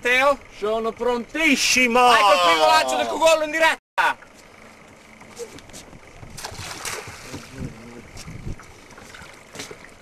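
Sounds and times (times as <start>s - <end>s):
wind on microphone: 5.8s - 9.3s
fishing net splashing into water: 6.3s - 7.6s, 8.6s - 10.0s.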